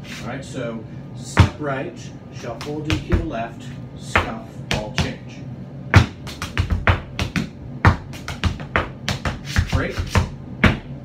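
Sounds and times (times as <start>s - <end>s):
tap shoes on tap board: 2.6s - 3.3s, 6.0s - 10.9s.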